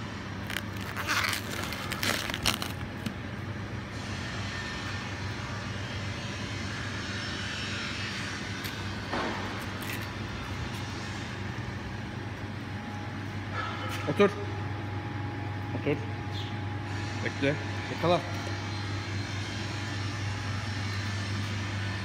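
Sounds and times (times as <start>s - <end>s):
low mechanical hum: 0.0s - 22.0s
soft rustles of plastic wrap: 0.4s - 3.1s.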